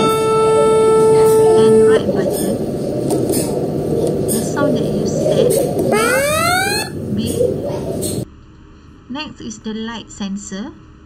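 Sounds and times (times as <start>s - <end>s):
background chatter: 0.2s - 8.2s
rising electronic beep: 5.9s - 7.0s.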